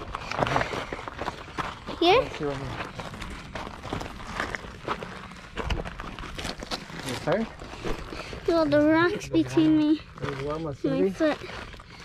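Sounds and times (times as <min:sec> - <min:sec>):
footsteps on rock and gravel: 0:00.0 - 0:12.0.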